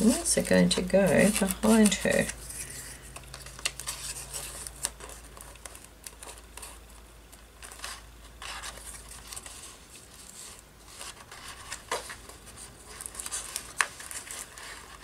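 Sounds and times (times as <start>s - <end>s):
paper rustling and brushing: 0.0s - 7.0s, 7.6s - 15.0s.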